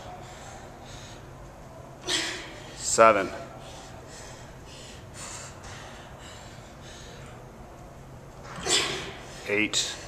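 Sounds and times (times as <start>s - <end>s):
woman breathing hard: 3.6s - 7.4s.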